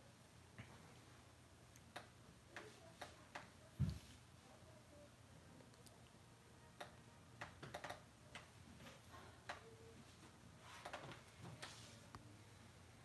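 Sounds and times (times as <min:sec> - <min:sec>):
faint irregular clicks and taps: 0:01.7 - 0:04.1, 0:06.8 - 0:09.7.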